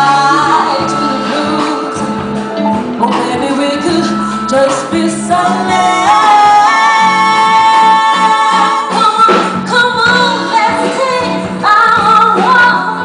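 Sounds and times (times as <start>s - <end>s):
live band playing: 0.0s - 13.0s
woman singing long held notes: 3.0s - 13.0s.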